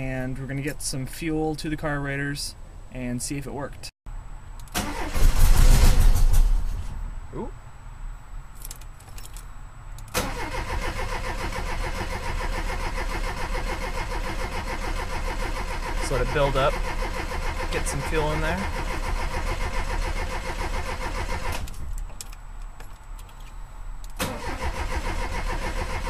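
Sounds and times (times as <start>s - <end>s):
engine cranking on starter: 4.6s - 6.6s, 10.1s - 21.8s, 24.2s - 26.0s.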